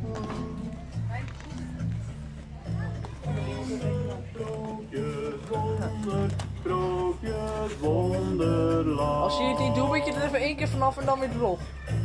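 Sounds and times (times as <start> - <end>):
held sung notes: 3.2 - 11.0.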